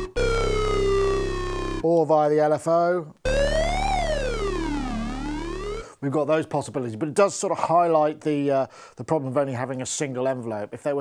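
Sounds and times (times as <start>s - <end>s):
steady low synth tone: 0.0s - 1.8s, 3.3s - 5.8s
synth note sweeping up and down: 0.0s - 1.8s, 3.3s - 5.8s.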